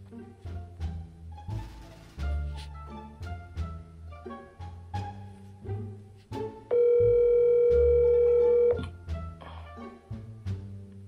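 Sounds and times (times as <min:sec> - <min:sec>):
light plucked background music: 0:00.0 - 0:11.0
phone ringing tone: 0:06.7 - 0:08.8.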